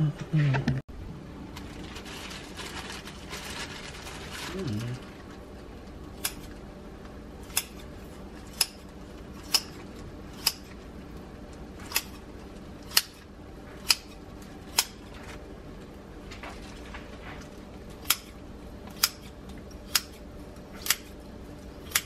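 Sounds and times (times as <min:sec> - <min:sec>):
kitchen shears snipping plastic: 0:06.1 - 0:06.6, 0:07.4 - 0:10.8, 0:11.8 - 0:15.4, 0:17.4 - 0:21.2, 0:21.8 - 0:22.0.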